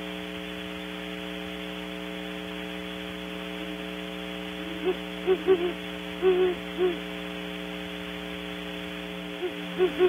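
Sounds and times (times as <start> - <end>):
electrical hum: 0.0 - 10.0
owl hooting: 4.6 - 7.2, 9.4 - 10.0.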